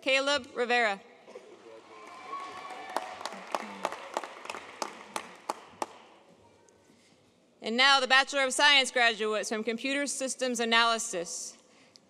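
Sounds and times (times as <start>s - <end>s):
faint cheering voices: 1.6s - 4.2s
audience applauding: 1.6s - 6.2s
sharp individual claps: 2.4s - 6.2s.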